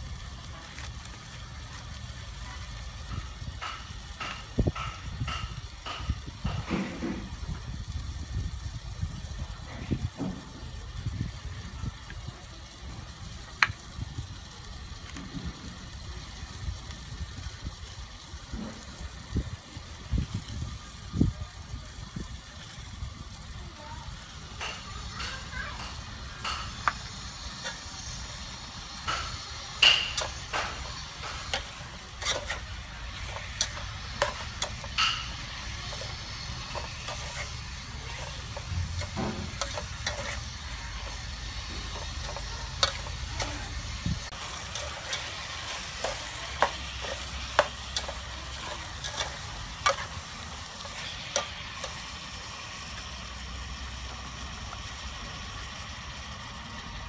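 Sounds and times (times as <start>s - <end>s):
food sizzling: 0.0s - 57.0s
metal spoon clinking on pots: 24.6s - 52.0s.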